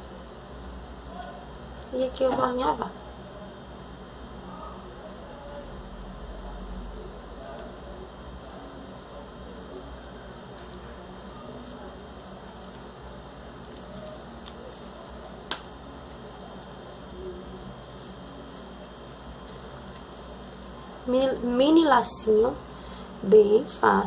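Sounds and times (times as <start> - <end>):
thin high whine: 0.0 - 24.0.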